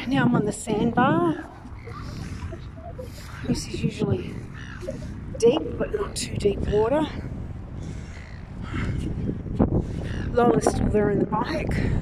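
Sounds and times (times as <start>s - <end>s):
wind rumble on microphone: 0.0s - 12.0s
bird calling: 0.8s - 7.1s.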